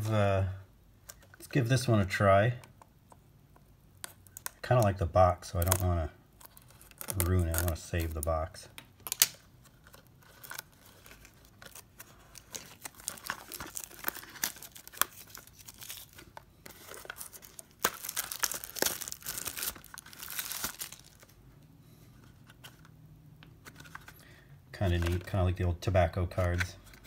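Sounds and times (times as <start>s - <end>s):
cellophane wrapper crinkling: 5.5s - 8.4s, 9.0s - 21.4s.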